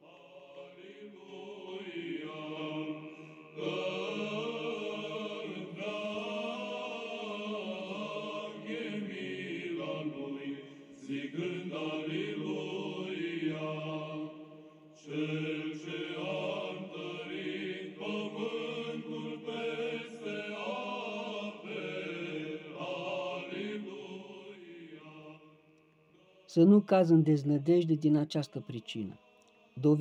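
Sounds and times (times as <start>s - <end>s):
slow vocal chanting: 0.0s - 26.7s, 28.4s - 30.0s.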